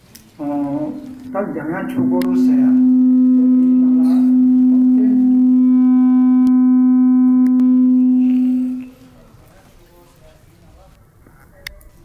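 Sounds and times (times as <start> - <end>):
person speaking: 0.4 - 3.0
loud steady held tone: 0.4 - 9.4.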